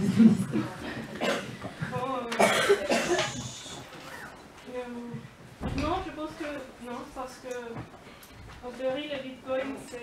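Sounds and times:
woman coughing into microphone: 0:00.8 - 0:01.6, 0:02.3 - 0:03.5
woman speaking: 0:04.6 - 0:07.9, 0:08.6 - 0:10.0.

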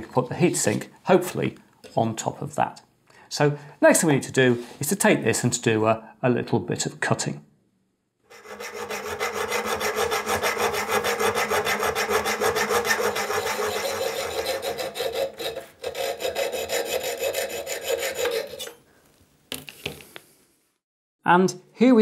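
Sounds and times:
hacksaw cutting metal plate: 0:08.3 - 0:18.8.

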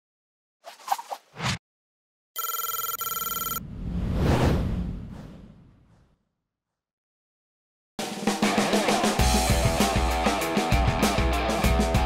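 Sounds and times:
electronic telephone ring: 0:02.4 - 0:03.6
whoosh with low rumble: 0:03.6 - 0:06.2.

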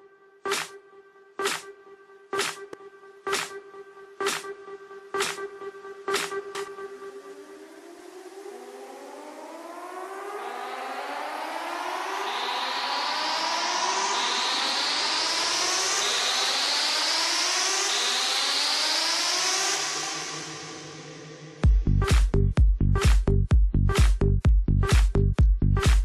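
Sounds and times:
synth tones gliding upward: 0:00.4 - 0:21.6.

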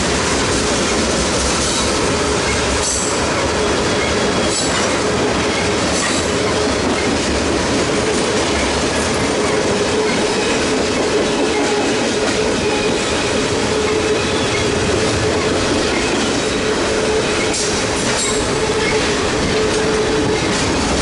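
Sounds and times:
freight train wheels clattering: 0:00.0 - 0:21.0.

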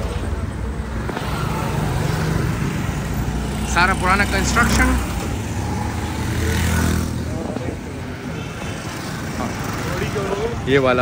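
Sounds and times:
motorcycle engines running: 0:00.0 - 0:11.0
street noise: 0:00.0 - 0:11.0.

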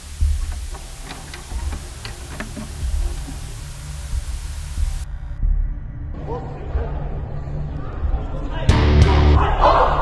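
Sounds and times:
sharp glitchy clicks and ticks: 0:00.0 - 0:05.4
steady low rumble: 0:00.0 - 0:08.4.

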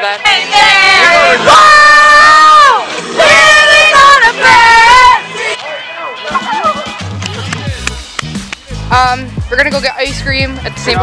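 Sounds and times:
group of people yelling: 0:00.5 - 0:06.9.

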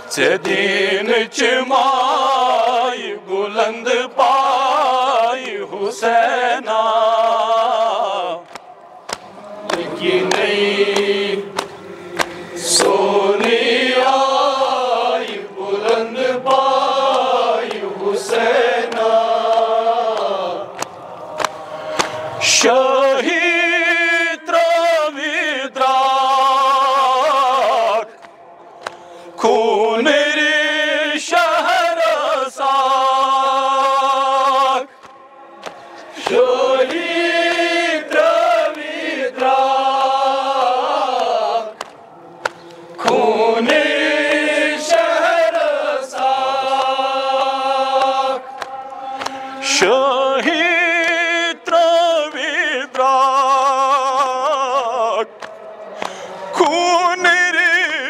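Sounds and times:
men chanting a lament: 0:00.0 - 0:58.0
sharp slaps: 0:07.2 - 0:13.7, 0:17.0 - 0:22.7, 0:33.8 - 0:39.6, 0:41.1 - 0:45.0, 0:46.1 - 0:49.4.

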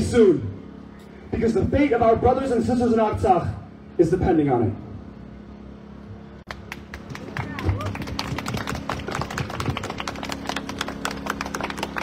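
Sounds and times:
low hum: 0:00.0 - 0:12.0
crowd clapping: 0:06.4 - 0:12.0.

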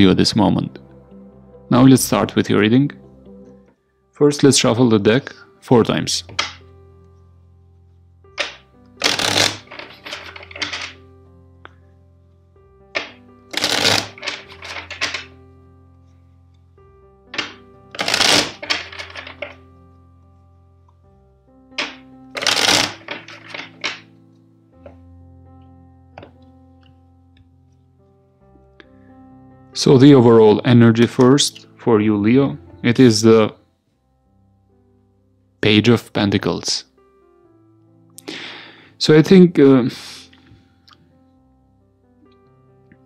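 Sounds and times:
soft background music: 0:00.0 - 0:43.0
cards being shuffled: 0:08.4 - 0:11.0, 0:13.0 - 0:15.3, 0:17.4 - 0:19.6, 0:21.8 - 0:24.0.

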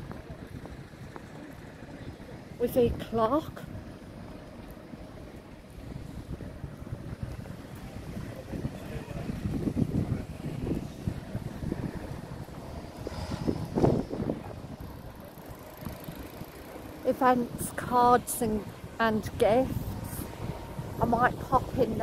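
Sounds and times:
road traffic going by: 0:00.0 - 0:22.0
wind buffeting microphone: 0:00.0 - 0:22.0.

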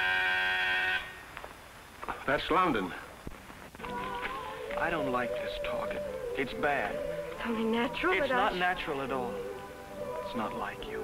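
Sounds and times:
electric buzzer: 0:00.0 - 0:01.2.

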